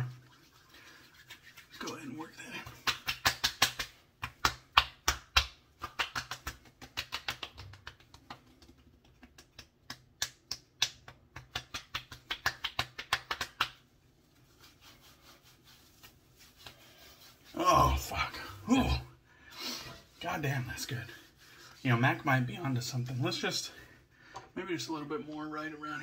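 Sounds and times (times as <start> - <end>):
palms slapping skin: 0.5 - 19.0.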